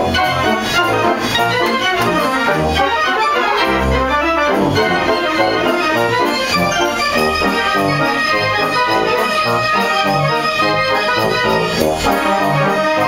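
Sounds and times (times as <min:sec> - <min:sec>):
pipe organ playing chords: 0:00.0 - 0:13.0.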